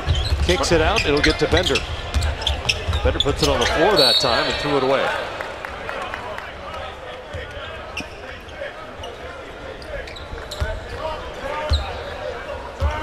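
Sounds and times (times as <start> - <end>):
sneaker squeaks: 0.0 - 4.8, 7.3 - 13.0
murmur of voices: 0.0 - 13.0.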